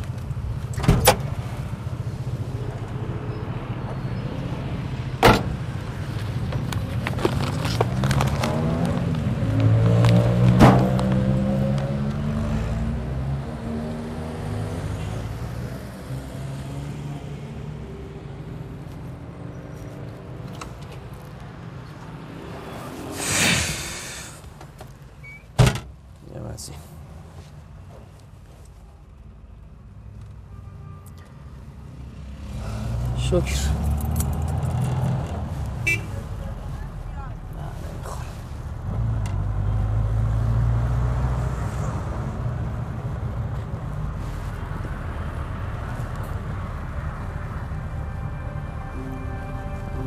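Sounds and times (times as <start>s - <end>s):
car engine accelerating: 7.9s - 17.2s
burst of hiss: 23.2s - 24.4s.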